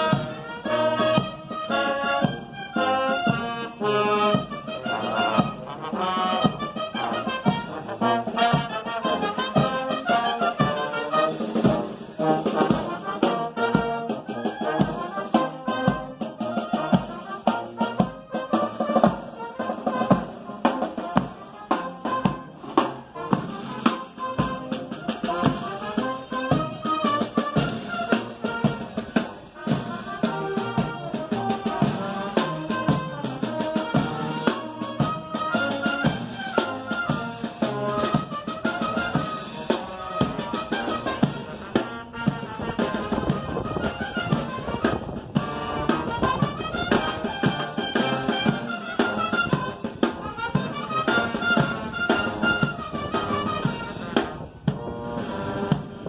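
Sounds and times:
brass instruments playing a march: 0.0 - 56.0
steady drum beat: 0.0 - 56.0.

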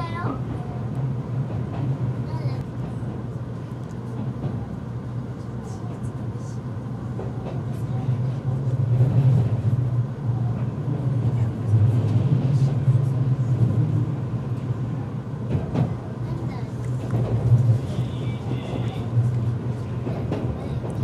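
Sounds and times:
electric train cabin rumble: 0.0 - 21.0.

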